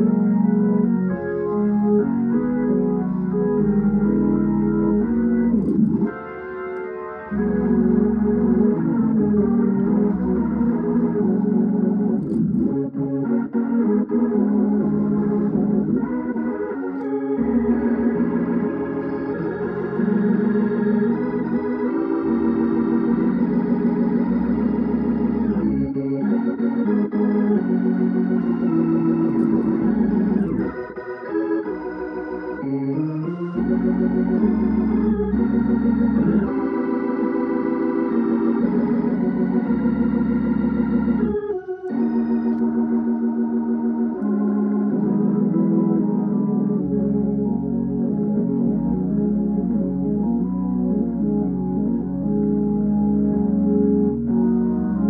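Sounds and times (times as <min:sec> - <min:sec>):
organ playing a hymn: 0:00.0 - 0:55.0.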